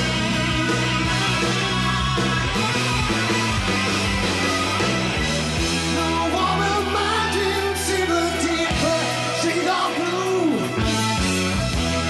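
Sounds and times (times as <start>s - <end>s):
electric guitar: 0.0s - 12.0s
live rock band: 0.0s - 12.0s.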